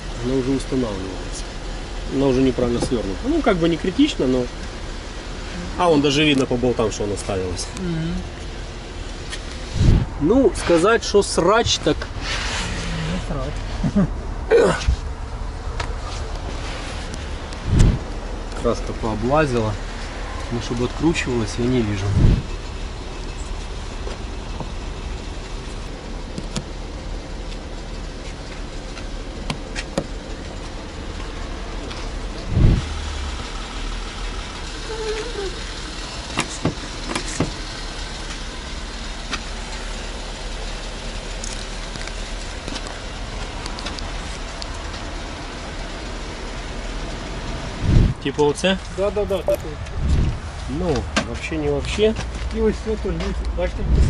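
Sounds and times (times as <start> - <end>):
car engine running: 0.0 - 54.0
car door shutting: 17.6 - 18.1, 22.1 - 22.5, 26.3 - 26.7, 29.4 - 30.2, 36.3 - 37.6.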